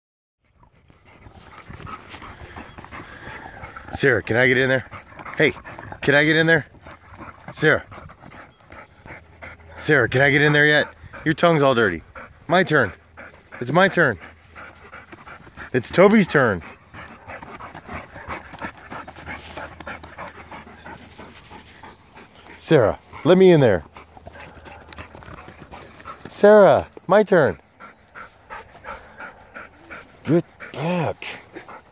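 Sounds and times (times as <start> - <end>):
dog sniffing and panting: 0.4 - 31.9.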